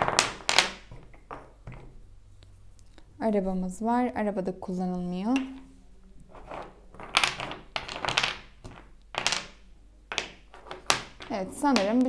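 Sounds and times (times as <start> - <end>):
wooden blocks clacking on table: 0.0 - 2.0, 5.3 - 5.7, 6.3 - 12.0.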